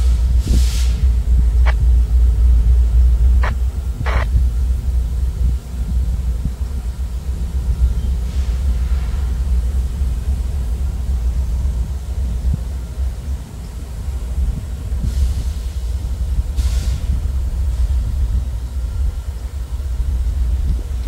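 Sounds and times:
locomotive low rumble: 0:00.0 - 0:21.0.

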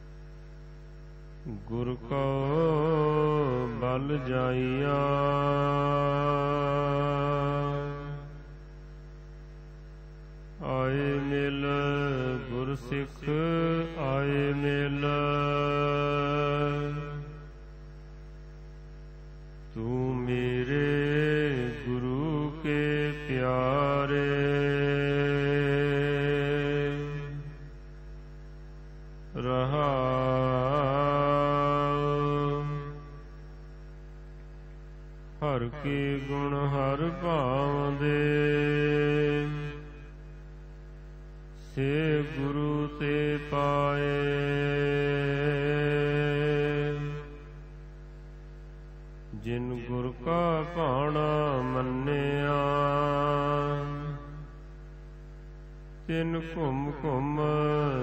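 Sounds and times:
low electrical hum: 0:00.0 - 0:58.0
person singing scripture: 0:01.4 - 0:08.5, 0:10.6 - 0:17.5, 0:19.7 - 0:27.7, 0:29.3 - 0:33.3, 0:35.4 - 0:40.2, 0:41.6 - 0:47.6, 0:49.3 - 0:54.6, 0:56.0 - 0:58.0.

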